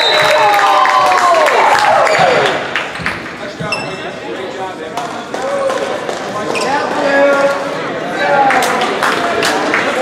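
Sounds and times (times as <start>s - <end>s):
spectators' voices: 1.4s - 10.0s.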